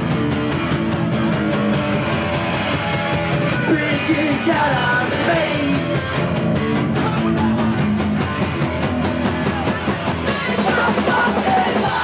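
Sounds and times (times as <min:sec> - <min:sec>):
punk band playing live: 0:00.0 - 0:12.0.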